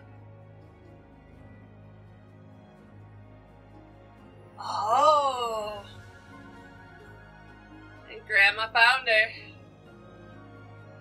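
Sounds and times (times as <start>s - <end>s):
soft background music: 0.0s - 11.0s
woman moaning: 4.6s - 6.0s.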